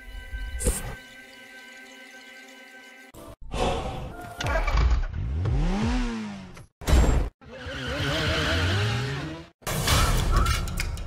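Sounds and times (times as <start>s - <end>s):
motorcycle engine revving: 5.0s - 6.7s.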